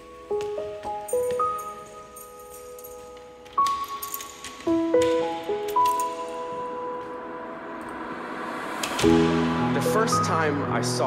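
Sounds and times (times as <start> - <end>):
electronic music held notes: 3.6 - 11.0.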